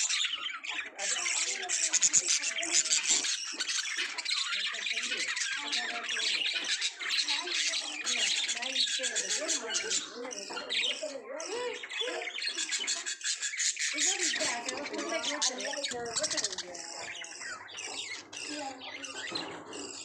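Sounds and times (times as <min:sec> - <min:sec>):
budgerigars chattering and warbling: 0:00.0 - 0:20.0.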